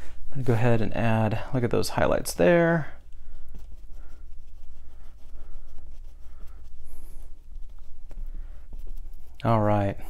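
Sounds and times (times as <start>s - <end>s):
steady low hum: 0.0s - 10.0s
paintbrush strokes on canvas: 1.6s - 10.0s.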